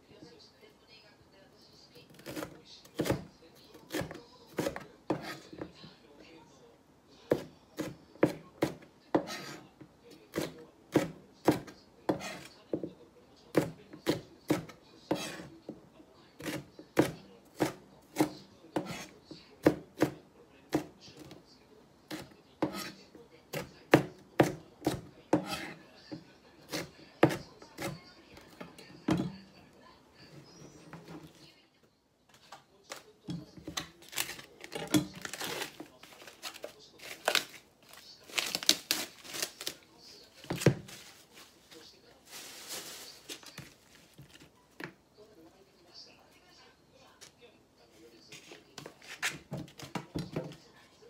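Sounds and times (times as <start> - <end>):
knife chopping on plastic board: 2.1 - 5.8, 7.3 - 9.6, 10.3 - 12.9, 13.5 - 15.5, 16.4 - 21.4, 22.1 - 29.4, 33.3 - 35.9, 40.4 - 41.0.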